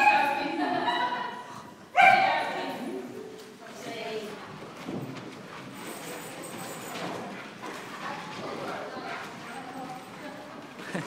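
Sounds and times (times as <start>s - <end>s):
people chattering in a hall: 0.0s - 11.0s
footsteps on wooden floor: 4.4s - 5.9s.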